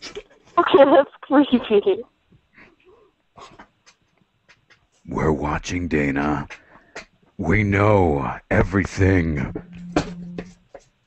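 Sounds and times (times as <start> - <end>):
breaths: 2.5 - 3.6, 6.5 - 7.2.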